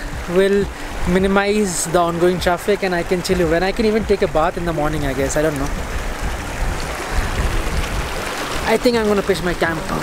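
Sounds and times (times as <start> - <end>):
low rumble of water: 0.0 - 10.0
stream rushing over stones: 0.0 - 10.0.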